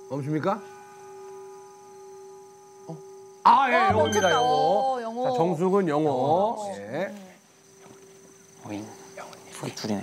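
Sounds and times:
hand bell ringing: 0:03.9 - 0:05.1.

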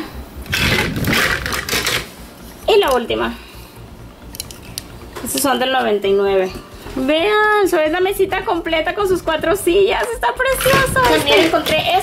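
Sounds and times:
hands rustling plastic objects: 0:00.5 - 0:03.1, 0:10.0 - 0:12.0.

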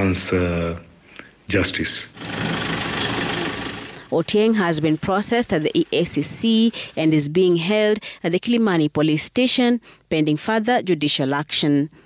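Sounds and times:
rattling mechanical engine noise: 0:02.1 - 0:07.2.

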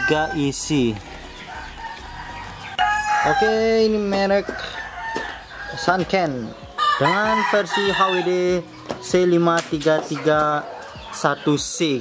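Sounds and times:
chickens clucking: 0:00.0 - 0:12.0
rooster crowing: 0:01.5 - 0:06.0, 0:06.8 - 0:08.4.

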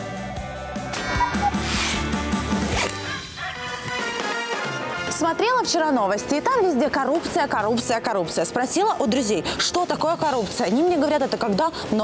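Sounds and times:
quick whoosh effect: 0:01.0 - 0:03.0.

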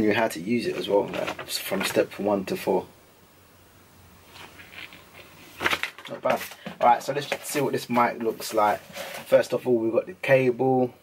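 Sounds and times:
paper and cardboard rustling: 0:00.6 - 0:02.1, 0:04.3 - 0:09.5.

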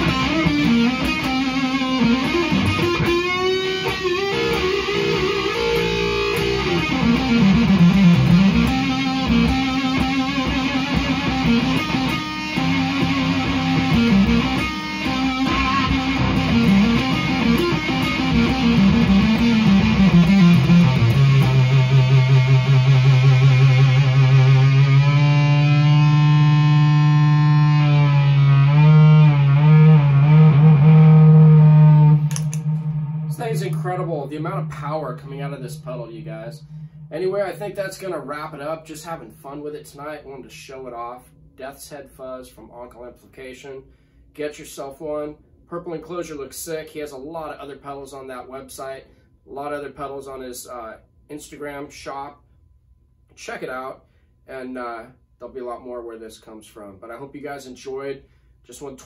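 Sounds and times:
fuzzed electric guitar lead: 0:00.0 - 0:39.8.

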